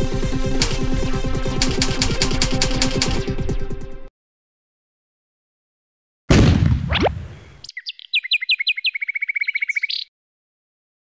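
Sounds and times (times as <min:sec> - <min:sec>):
deep boom: 0:06.3 - 0:07.4
bird chirps and trill: 0:07.5 - 0:10.1.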